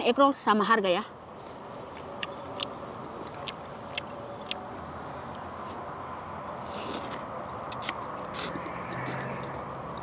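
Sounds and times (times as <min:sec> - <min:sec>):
outdoor background hum: 0:00.0 - 0:10.0.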